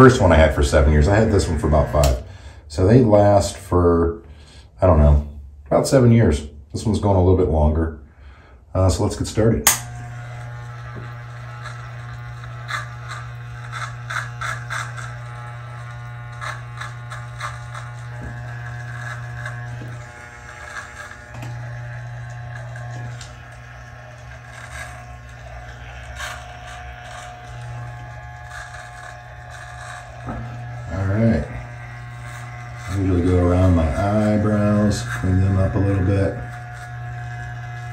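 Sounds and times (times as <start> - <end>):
trimmer blades crackling through hair: 0.0 - 2.3, 9.6 - 37.9
hair trimmer buzzing: 0.0 - 2.9, 9.4 - 37.9.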